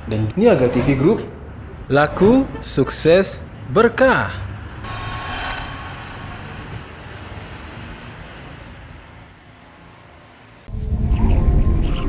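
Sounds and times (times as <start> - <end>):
rumbling whoosh: 4.7 - 8.8
bass-heavy logo sting: 4.8 - 8.2.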